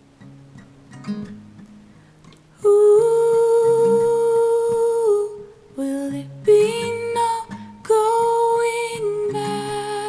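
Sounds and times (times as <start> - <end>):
plucked acoustic guitar: 0.0 - 10.0
woman singing long note: 2.6 - 10.0.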